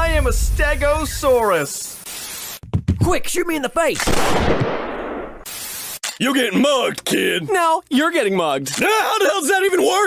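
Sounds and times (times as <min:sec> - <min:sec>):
tv static hiss: 0:00.6 - 0:02.6, 0:05.4 - 0:06.6
cartoon gunshot blast: 0:04.0 - 0:05.4.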